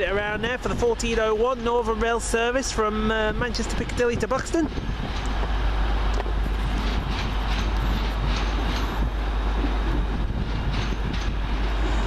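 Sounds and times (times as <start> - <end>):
diesel train approaching: 0.0 - 12.0.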